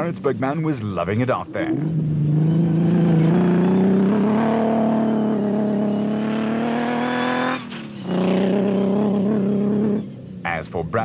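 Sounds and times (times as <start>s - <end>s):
buggy engine revving hard: 1.2s - 10.4s.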